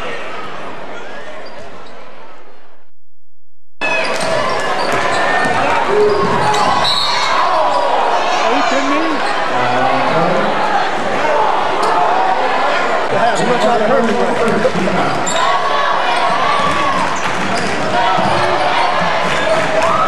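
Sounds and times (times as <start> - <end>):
crowd and player voices: 0.0 - 2.8, 3.8 - 20.0.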